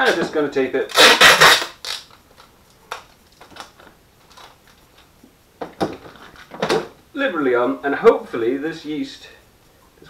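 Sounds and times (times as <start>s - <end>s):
sticky tape ripping: 0.0s - 0.3s, 0.9s - 4.5s.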